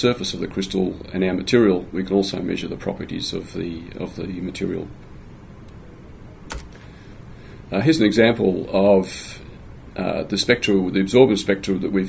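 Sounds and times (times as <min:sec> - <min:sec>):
sharp click: 0:06.5 - 0:06.8.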